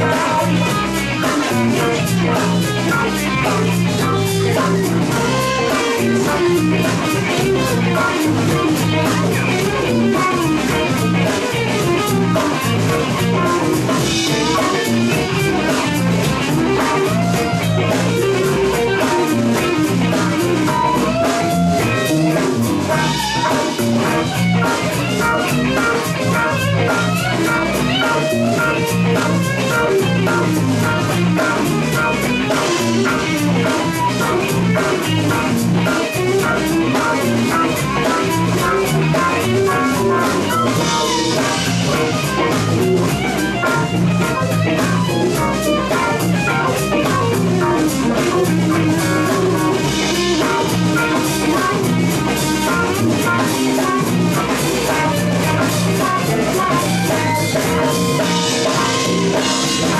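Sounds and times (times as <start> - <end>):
drum kit: 0.0 - 59.9
electric bass: 0.0 - 59.9
electric guitars: 0.0 - 59.9
keyboard: 0.0 - 59.9.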